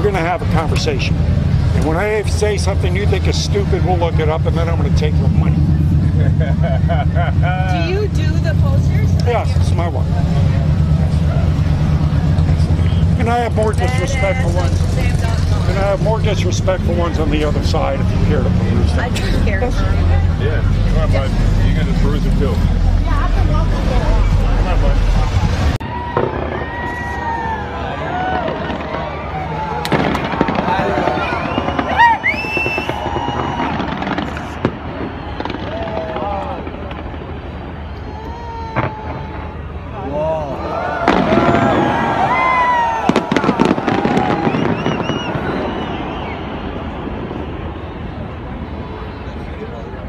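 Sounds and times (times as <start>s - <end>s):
street noise: 0.0s - 50.0s
firework whistling: 19.4s - 49.6s.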